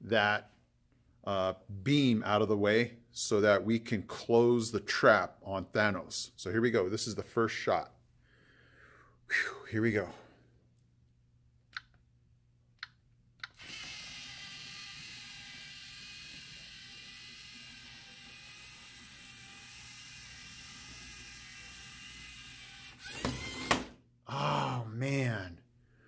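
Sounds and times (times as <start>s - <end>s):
robot motors whirring: 13.6s - 23.9s.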